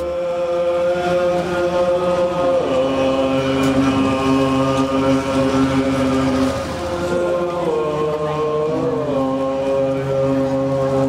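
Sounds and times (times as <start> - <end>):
monks chanting: 0.0 - 11.0.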